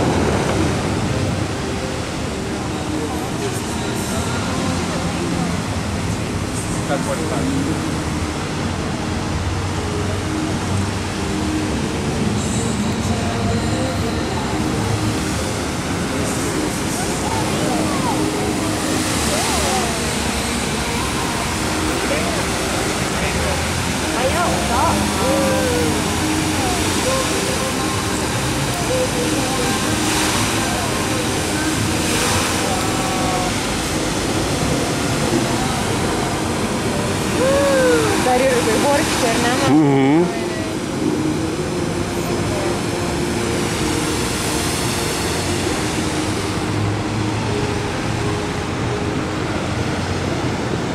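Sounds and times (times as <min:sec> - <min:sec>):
crowd talking: 0:00.0 - 0:50.9
fountain water jets spraying: 0:00.0 - 0:50.9.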